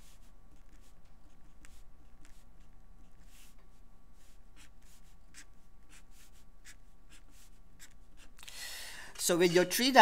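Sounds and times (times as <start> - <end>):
pen writing on paper: 0.0 - 8.4.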